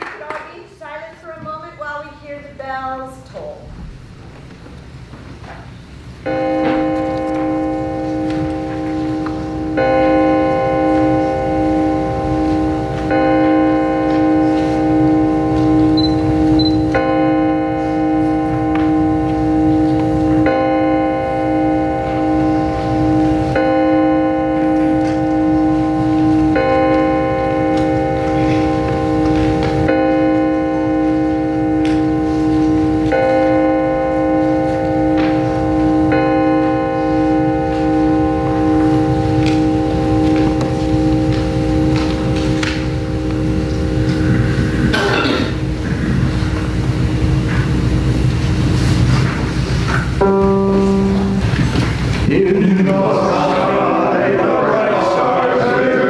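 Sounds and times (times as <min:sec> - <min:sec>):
organ playing slow chords: 0:03.8 - 0:56.0.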